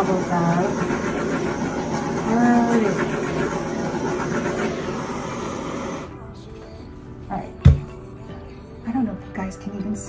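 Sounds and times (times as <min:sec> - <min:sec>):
torch flame hissing: 0:00.0 - 0:06.1
faint background music: 0:00.0 - 0:10.0.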